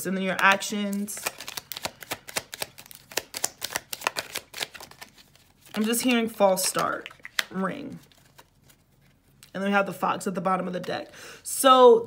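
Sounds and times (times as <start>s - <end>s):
cards being shuffled: 0.3s - 9.5s.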